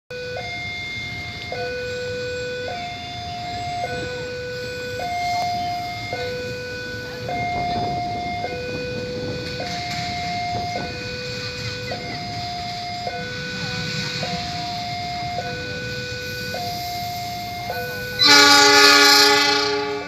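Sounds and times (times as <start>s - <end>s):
level crossing two-tone alarm: 0.1s - 20.0s.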